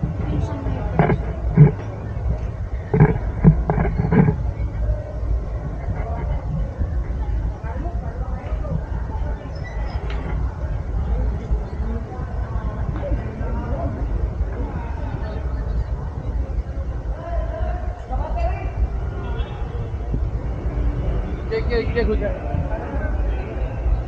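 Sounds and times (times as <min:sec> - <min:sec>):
nearby voices: 0:00.0 - 0:20.4
traffic rumble: 0:00.0 - 0:24.0.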